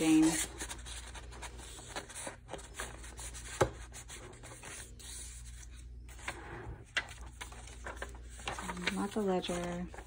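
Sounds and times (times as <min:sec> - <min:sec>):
paper rustling and sliding: 0:00.0 - 0:10.0.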